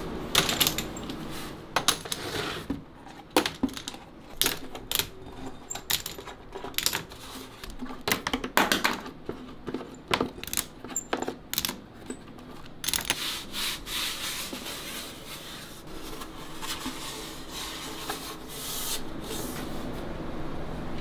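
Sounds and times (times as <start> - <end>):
wooden clamps clattering: 0.4 - 1.2, 1.8 - 13.2.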